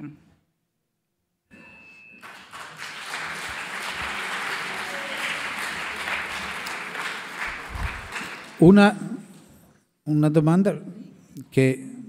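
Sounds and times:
audience applause: 0:02.2 - 0:08.6.

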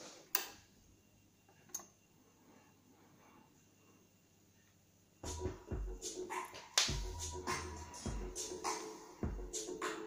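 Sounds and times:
music from vinyl record: 0:05.2 - 0:10.0.

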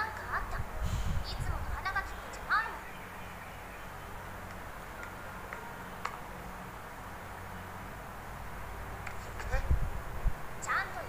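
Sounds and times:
young woman speaking: 0:00.0 - 0:02.9, 0:10.6 - 0:11.0.

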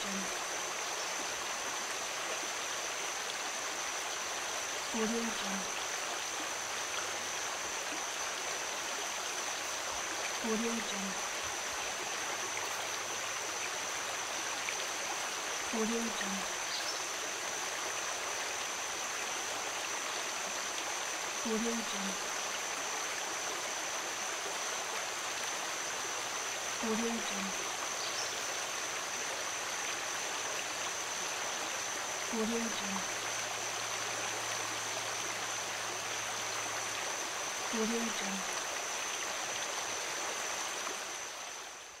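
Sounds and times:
stream flowing: 0:00.0 - 0:42.0.

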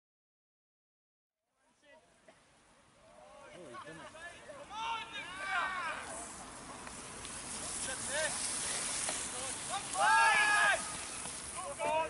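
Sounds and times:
steady hiss: 0:01.6 - 0:12.0
spectator shouting: 0:04.1 - 0:06.1, 0:09.7 - 0:11.0
crowd calling: 0:07.5 - 0:12.0.

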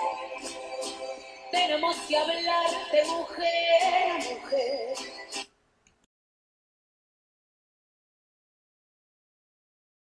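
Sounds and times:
woman singing: 0:00.0 - 0:05.2.

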